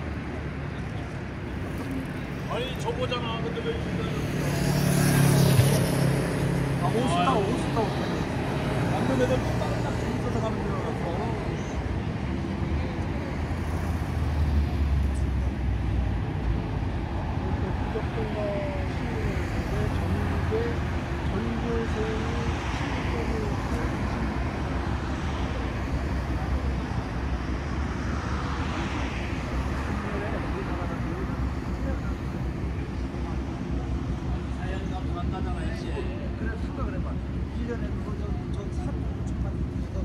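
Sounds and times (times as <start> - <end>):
cars passing: 0.0 - 40.0
traffic noise: 0.0 - 40.0
voices: 0.6 - 40.0.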